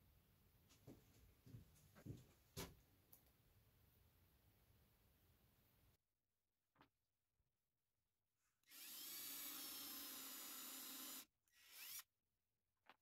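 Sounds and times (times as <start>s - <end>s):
cordless drill motor running: 8.6s - 12.1s.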